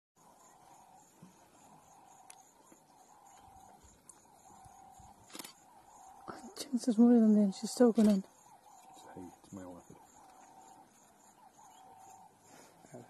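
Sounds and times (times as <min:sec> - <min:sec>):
faint high chirp: 0:00.2 - 0:13.0.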